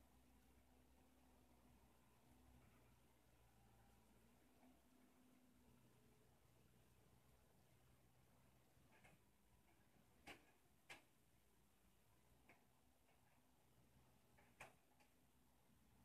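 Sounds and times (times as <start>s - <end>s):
faint low hum: 0.0s - 16.0s
faint clicks: 8.8s - 11.2s, 12.3s - 15.4s.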